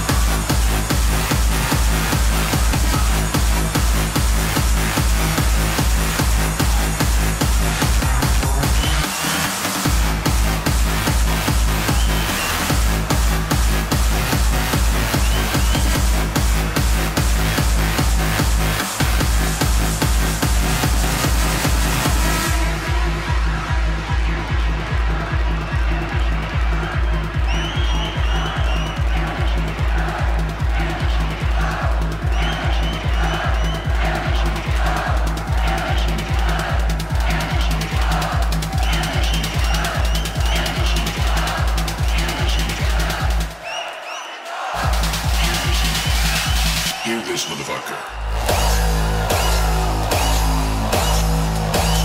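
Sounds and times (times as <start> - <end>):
electronic dance music: 0.0 - 52.0.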